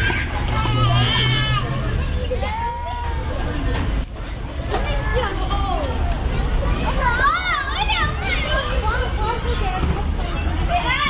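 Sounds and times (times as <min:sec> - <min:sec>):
children calling out: 0:00.0 - 0:11.0
city traffic rumble: 0:00.0 - 0:11.0.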